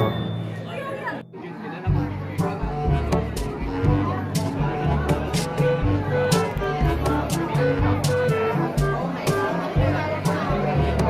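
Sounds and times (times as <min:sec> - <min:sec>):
background music: 0:00.0 - 0:11.0
people chatting: 0:00.0 - 0:11.0.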